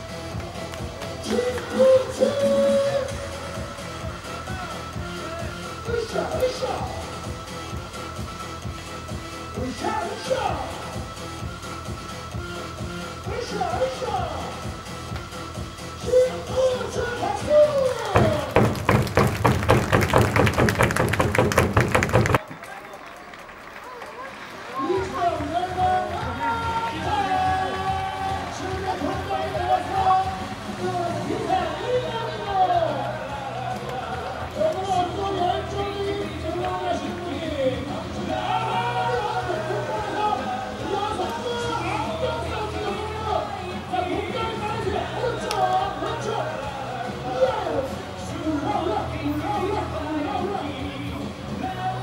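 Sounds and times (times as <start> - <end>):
cheer music over loudspeakers: 0.0 - 52.0
voice holding a long line: 1.2 - 3.8.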